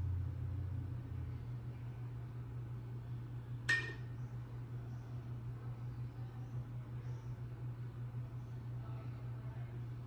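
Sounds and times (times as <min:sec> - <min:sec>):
steady low hum: 0:00.0 - 0:10.0
sharp ringing clink: 0:03.7 - 0:04.1.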